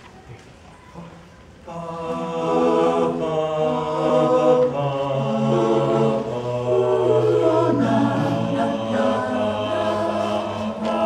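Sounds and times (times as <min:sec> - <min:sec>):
a cappella group singing hymn: 0:01.6 - 0:11.0.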